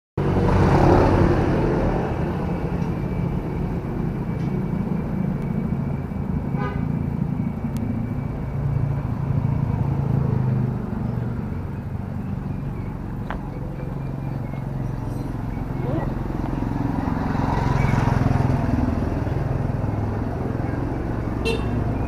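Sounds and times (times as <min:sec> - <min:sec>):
low engine hum: 0:00.2 - 0:22.0
motor scooter passing: 0:00.2 - 0:22.0
short horn beep: 0:21.4 - 0:21.8.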